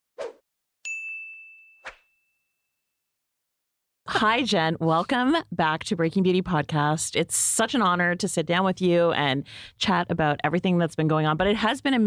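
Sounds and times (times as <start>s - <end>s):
bright bell-like ding: 0.9s - 2.4s.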